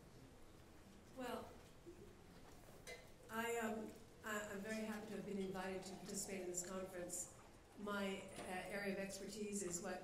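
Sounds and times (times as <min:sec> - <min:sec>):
woman speaking into microphone: 0:01.2 - 0:01.6, 0:03.3 - 0:10.0.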